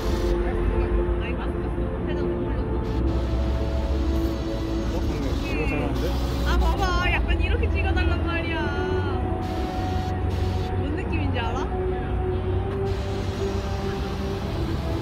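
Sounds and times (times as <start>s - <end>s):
music with held notes: 0.0s - 15.0s.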